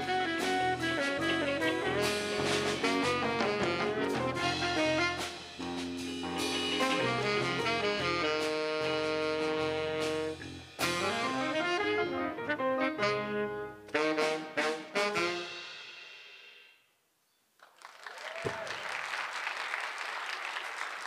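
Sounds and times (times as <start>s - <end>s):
piano: 0.0s - 15.7s
saxophone: 0.0s - 15.9s
drum kit: 0.0s - 16.8s.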